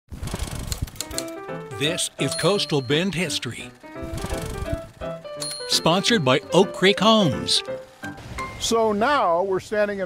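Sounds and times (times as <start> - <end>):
typewriter keys clacking: 0.9 - 1.4
music with held notes: 1.0 - 8.8
man speaking: 1.7 - 3.8, 5.7 - 7.7.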